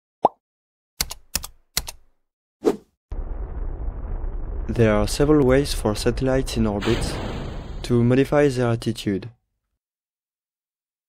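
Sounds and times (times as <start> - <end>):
computer keyboard keystrokes: 1.0 - 2.1.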